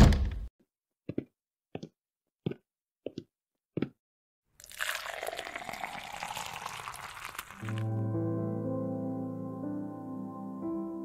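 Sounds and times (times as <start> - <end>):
coffee bubbling and crackling: 4.6 - 7.9.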